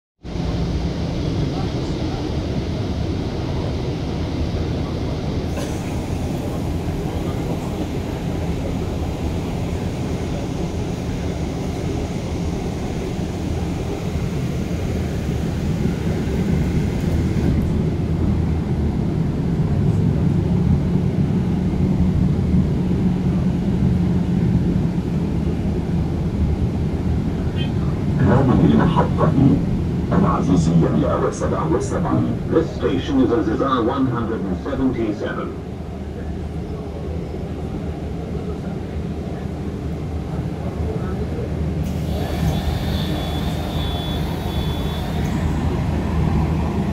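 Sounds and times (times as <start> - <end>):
bus engine and road rumble: 0.2 - 46.9.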